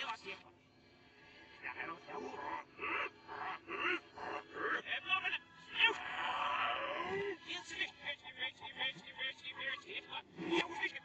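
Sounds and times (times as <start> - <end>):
reversed cartoon voices: 1.6 - 11.0.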